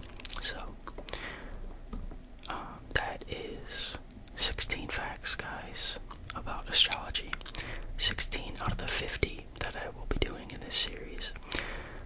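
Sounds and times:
man whispering: 0.0 - 0.8, 2.4 - 11.5.

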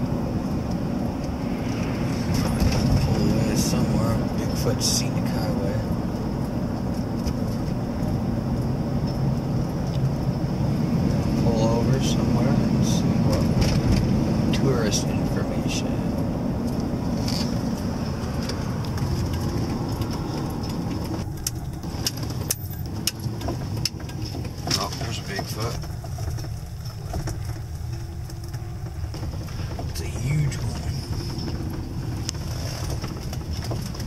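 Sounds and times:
van engine and road rumble: 0.0 - 34.0
light rattles and clicks: 11.0 - 34.0.

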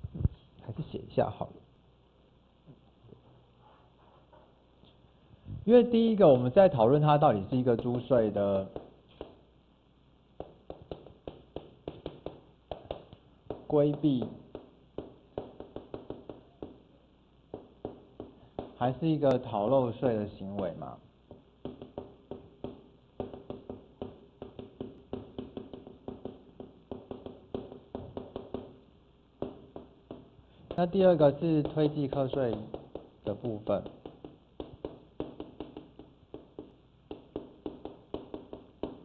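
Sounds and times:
chalk tapping on chalkboard: 7.8 - 9.4, 10.4 - 16.9, 17.5 - 19.4, 20.5 - 28.8, 29.4 - 39.0.

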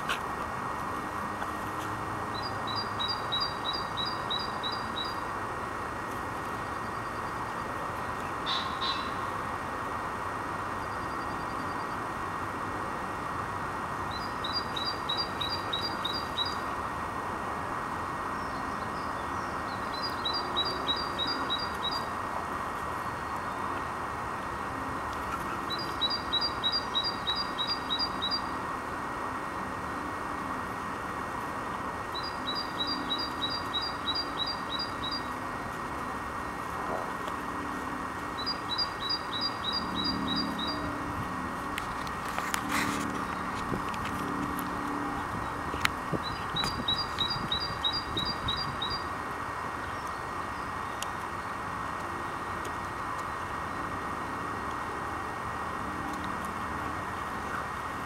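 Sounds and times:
steady background noise: 0.0 - 58.0
songbird singing high notes: 2.4 - 5.2, 19.0 - 22.1, 25.7 - 28.6, 32.1 - 35.4, 38.4 - 40.9, 46.2 - 49.1.

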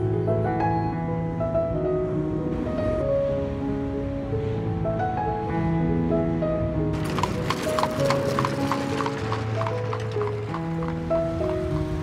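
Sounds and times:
background music: 0.0 - 12.0
horse hooves clip-clopping on road: 7.0 - 12.0.

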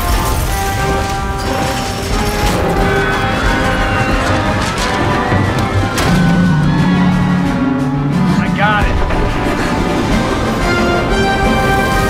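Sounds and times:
orchestral score sustained notes: 0.0 - 12.0.

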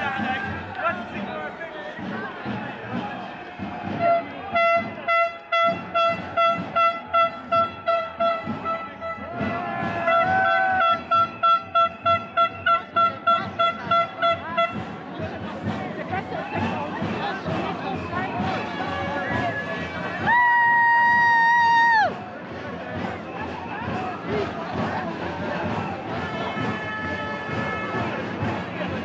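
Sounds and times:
crowd chatter: 0.0 - 29.0
horn blasts: 3.8 - 14.9, 25.6 - 29.0.

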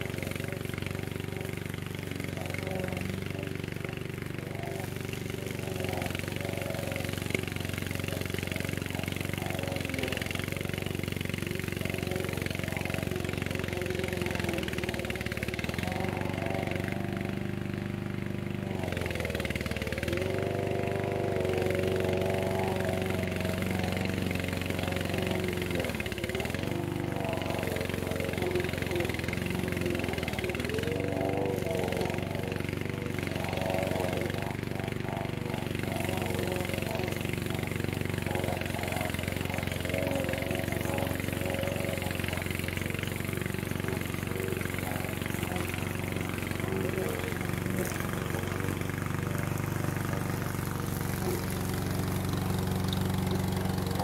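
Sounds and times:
mower engine cutting grass: 0.0 - 54.0.

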